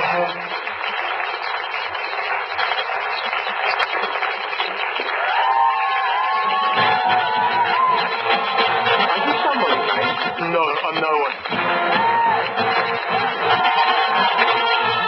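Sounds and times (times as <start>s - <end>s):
crowd chatter: 0.0s - 15.0s
crowd cheering: 0.0s - 15.0s
background music: 6.0s - 15.0s.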